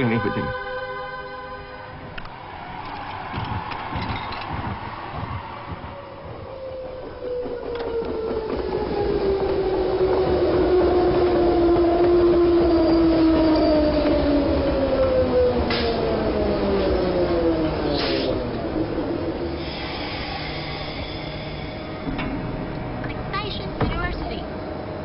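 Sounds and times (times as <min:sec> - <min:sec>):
train motor whine: 0:01.3 - 0:25.0
electric train running: 0:02.2 - 0:25.0.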